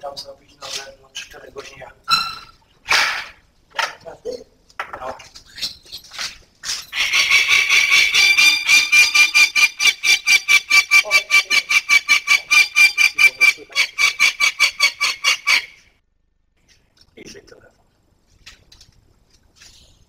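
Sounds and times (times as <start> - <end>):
falcon harsh cries: 6.9 - 15.8.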